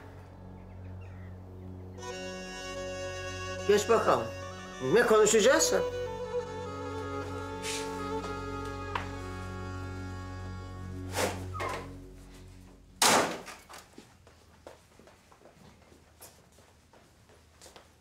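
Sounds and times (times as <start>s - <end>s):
drama score held notes: 0.0s - 13.7s.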